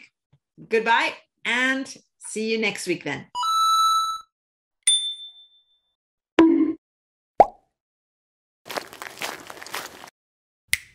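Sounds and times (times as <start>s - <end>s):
bell-like ding: 4.9s - 5.9s.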